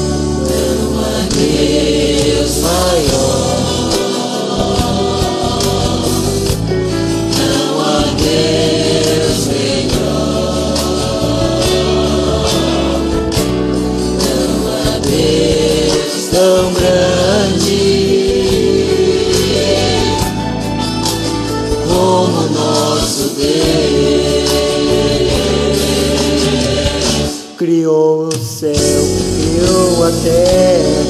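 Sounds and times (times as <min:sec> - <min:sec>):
karaoke backing track: 0:00.0 - 0:31.0
man singing: 0:15.9 - 0:18.6, 0:21.8 - 0:23.8, 0:27.4 - 0:31.0.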